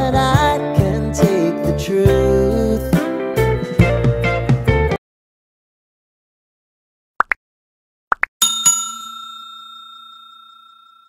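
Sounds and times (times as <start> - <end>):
notification bell ding: 8.4 - 11.0.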